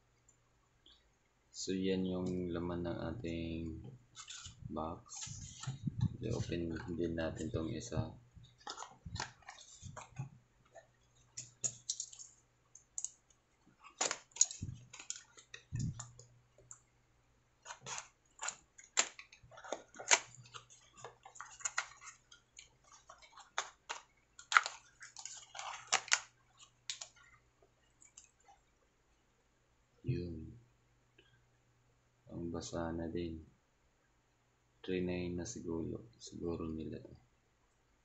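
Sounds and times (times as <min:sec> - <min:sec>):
faint low hum: 0:00.0 - 0:38.0.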